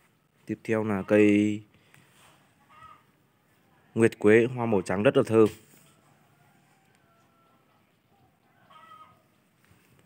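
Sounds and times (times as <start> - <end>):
faint animal call: 2.5 - 3.2, 6.2 - 9.9.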